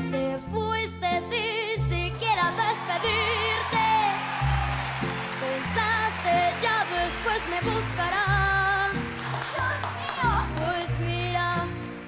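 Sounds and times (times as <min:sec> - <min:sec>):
girl singing a ballad: 0:00.0 - 0:04.2, 0:05.4 - 0:11.9.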